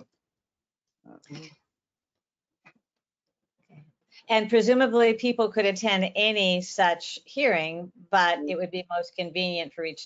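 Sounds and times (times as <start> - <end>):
person saying uh: 1.1 - 1.5.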